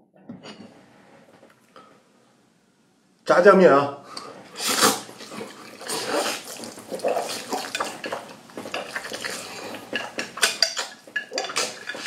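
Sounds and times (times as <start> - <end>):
noodles slurped and chewed: 4.5 - 12.0.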